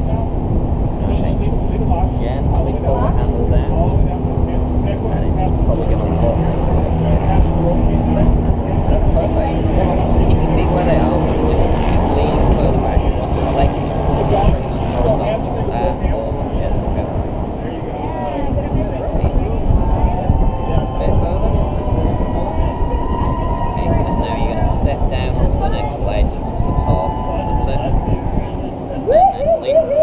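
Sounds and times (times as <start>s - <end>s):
indistinct voices: 0.0s - 30.0s
wind buffeting microphone: 0.0s - 30.0s.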